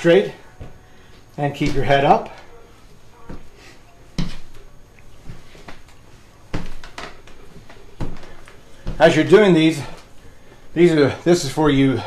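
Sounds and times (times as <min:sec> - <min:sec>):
dull footfall thumps on floor: 0:07.6 - 0:09.2.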